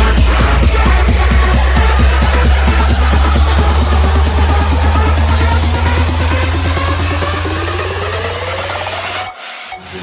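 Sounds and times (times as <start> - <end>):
electro house music: 0.0 - 10.0
held bass: 0.0 - 10.0
hissing noise riser: 0.0 - 10.0
rising synth sweep: 0.0 - 10.0.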